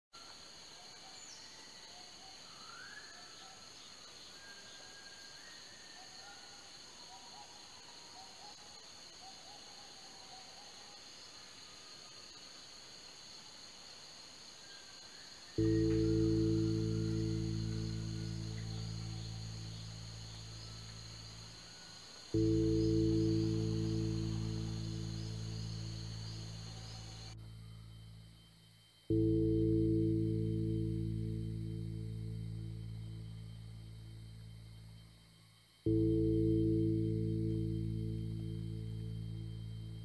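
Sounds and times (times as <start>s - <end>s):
high insect drone: 0.2s - 40.0s
low ambient music chord: 15.6s - 35.2s, 35.8s - 40.0s.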